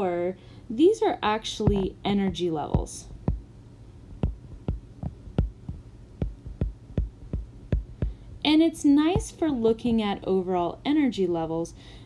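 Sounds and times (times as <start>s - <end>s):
stylus tapping on glass screen: 1.6s - 3.4s, 4.2s - 8.2s.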